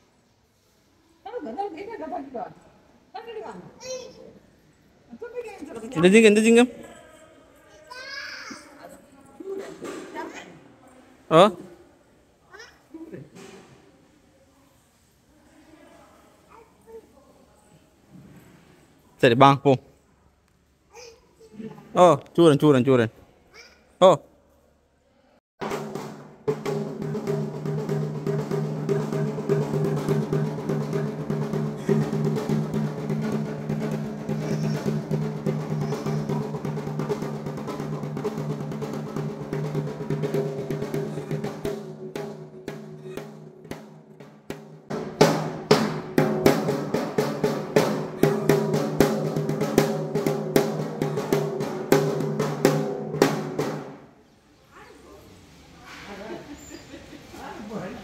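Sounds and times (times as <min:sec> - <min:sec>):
barrel drum beaten fast: 0:25.6 - 0:54.0.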